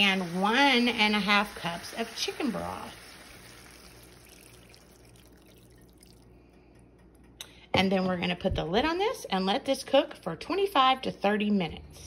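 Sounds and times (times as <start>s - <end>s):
broth trickling into a skillet: 0.0s - 6.5s.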